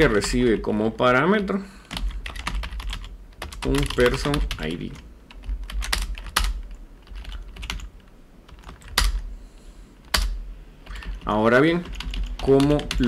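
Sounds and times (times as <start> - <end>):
typing on computer keyboard: 1.9 - 7.9, 8.5 - 9.2, 10.9 - 13.0.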